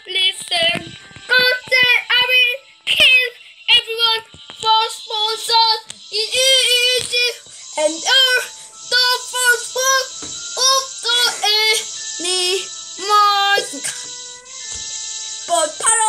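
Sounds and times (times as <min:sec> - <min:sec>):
child singing: 0:00.0 - 0:14.1, 0:15.5 - 0:16.0.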